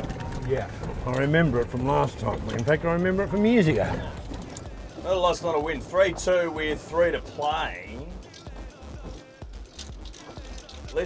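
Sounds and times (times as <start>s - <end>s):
golf clubs rattling in bags: 0.0s - 4.7s, 9.6s - 11.0s
faint background music: 0.0s - 11.0s
golf cart rumble: 0.0s - 11.0s.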